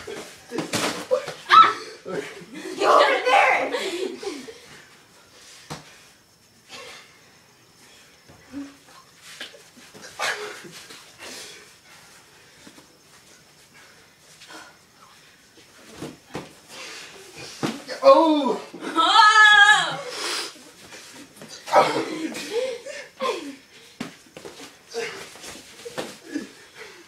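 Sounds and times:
voices and laughter: 1.6s - 4.7s.

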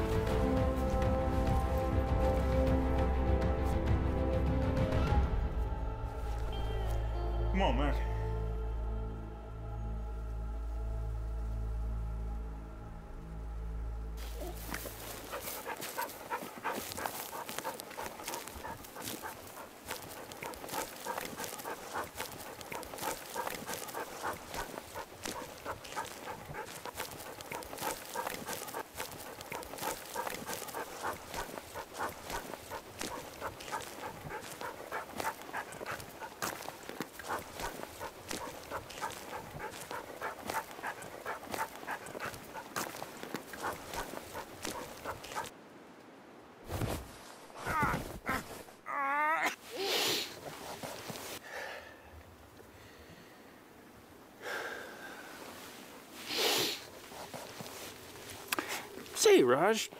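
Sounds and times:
dog panting fast: 14.3s - 45.5s, 57.1s - 57.8s.

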